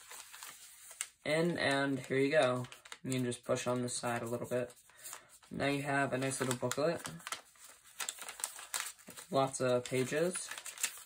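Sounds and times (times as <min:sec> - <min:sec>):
paper pages rustling: 0:00.0 - 0:11.0.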